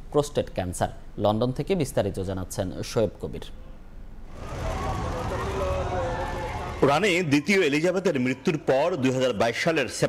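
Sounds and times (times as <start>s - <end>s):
traffic rumble: 4.2s - 7.3s.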